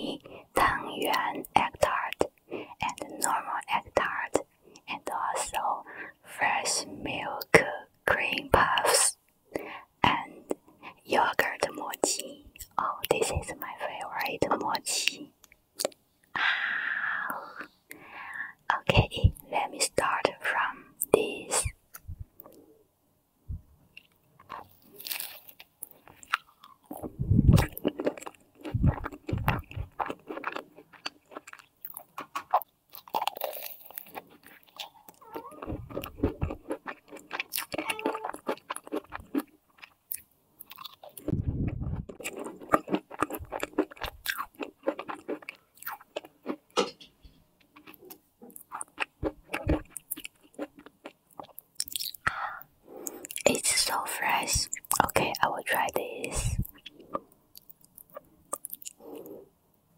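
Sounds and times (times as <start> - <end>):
crunching pastry: 23.9 - 41.3, 42.0 - 46.9, 47.6 - 52.4
wet chewing: 24.0 - 46.9, 47.6 - 53.7, 56.5 - 59.4.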